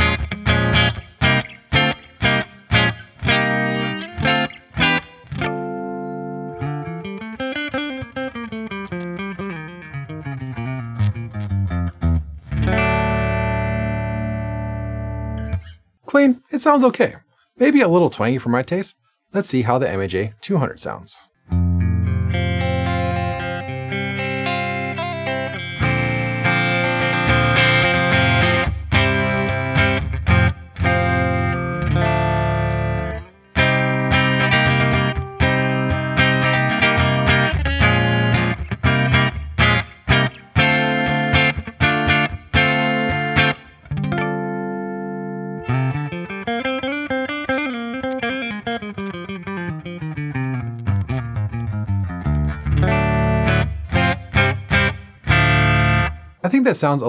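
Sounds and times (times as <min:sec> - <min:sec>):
clean electric guitar: 0:00.0 - 0:15.8, 0:21.4 - 0:56.5.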